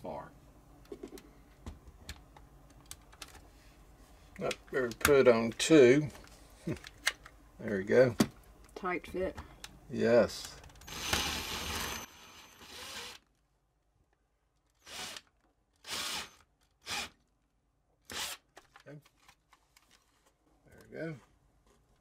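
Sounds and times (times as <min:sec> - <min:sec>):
cordless drill boring into wood: 0:10.8 - 0:13.2, 0:14.8 - 0:17.2, 0:18.1 - 0:18.4.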